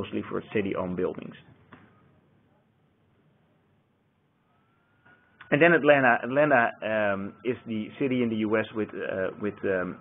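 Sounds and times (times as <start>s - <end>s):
faint thin tone: 4.3s - 5.6s.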